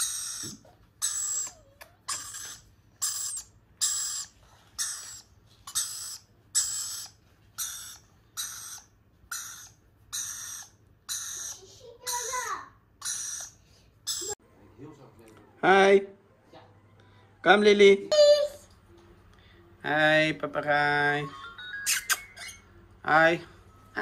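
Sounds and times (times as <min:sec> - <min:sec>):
lorikeet shrill calls: 0:00.0 - 0:14.4, 0:21.8 - 0:22.7.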